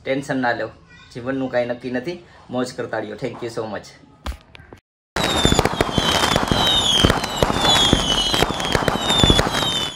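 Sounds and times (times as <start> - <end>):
falling firework whistles: 5.2 - 9.9
fireworks crackling and popping: 5.2 - 9.9.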